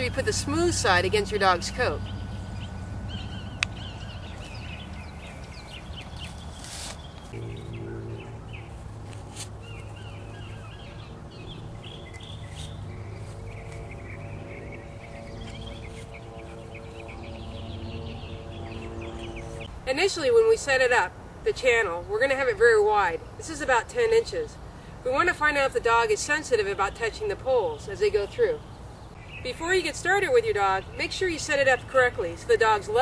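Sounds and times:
small birds chirping: 0.0 - 21.0, 25.8 - 33.0
steady low hum: 0.0 - 33.0.

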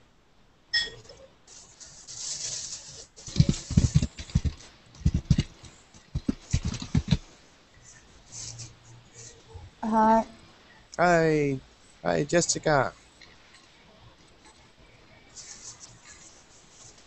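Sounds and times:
short electronic beep: 0.7 - 1.0
irregular thumps and scratches: 1.0 - 8.8.

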